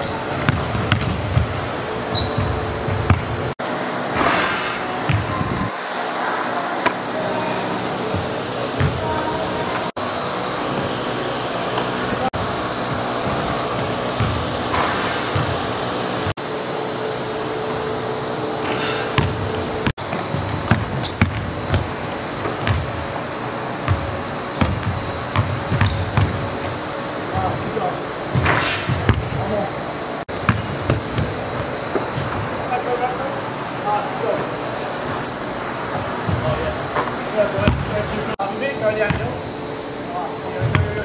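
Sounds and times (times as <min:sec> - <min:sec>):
basketball bouncing on hardwood floor: 0:00.3 - 0:01.6, 0:02.2 - 0:03.4, 0:05.1 - 0:05.4, 0:19.2 - 0:21.9, 0:23.9 - 0:26.4, 0:28.4 - 0:29.4, 0:30.4 - 0:31.4, 0:40.6 - 0:40.9.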